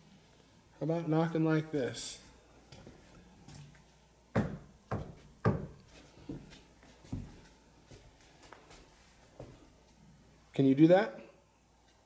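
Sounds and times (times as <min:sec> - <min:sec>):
knocking on hard surface: 0:04.4 - 0:05.8.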